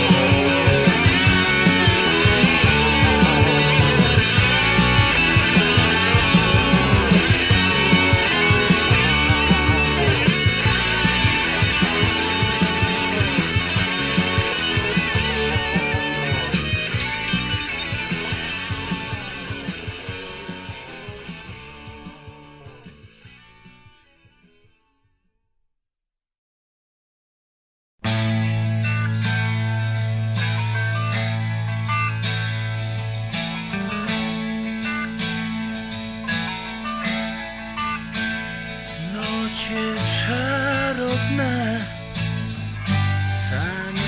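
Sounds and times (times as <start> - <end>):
sustained bass notes: 0.0 - 24.3, 28.0 - 44.0
hard rock band playing: 0.0 - 24.5, 28.0 - 44.0
electric guitar melody with slides: 0.0 - 24.9, 28.0 - 44.0.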